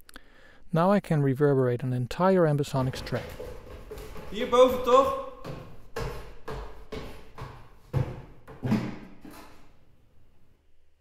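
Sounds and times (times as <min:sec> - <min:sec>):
thudding footsteps with reverb: 0:02.7 - 0:09.7.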